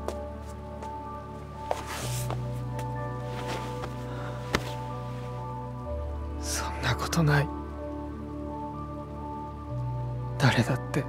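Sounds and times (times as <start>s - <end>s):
soft music of sustained chords: 0.0s - 11.0s.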